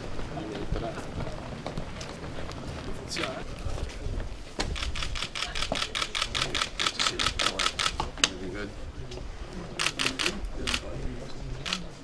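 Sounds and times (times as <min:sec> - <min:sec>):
camera shutters clicking: 0:09.8 - 0:10.8, 0:11.6 - 0:11.8.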